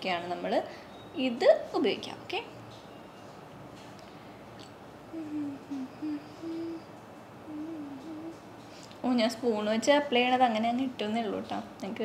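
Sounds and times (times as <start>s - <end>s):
woman humming: 5.1s - 8.5s.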